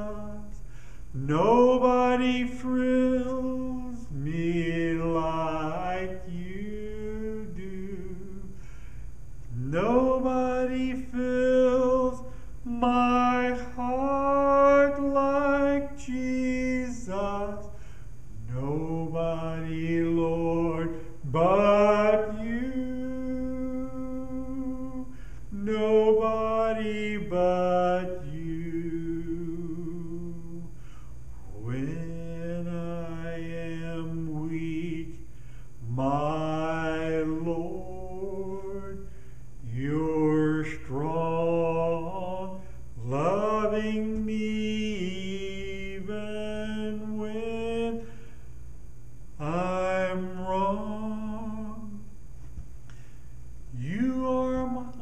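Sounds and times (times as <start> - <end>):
man singing solo: 0.0 - 8.6, 9.5 - 30.8, 31.4 - 35.2, 35.8 - 48.2, 49.4 - 52.0, 53.7 - 55.0.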